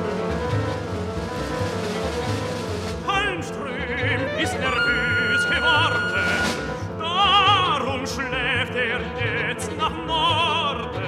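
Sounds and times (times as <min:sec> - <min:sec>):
small classical ensemble playing: 0:00.0 - 0:10.8.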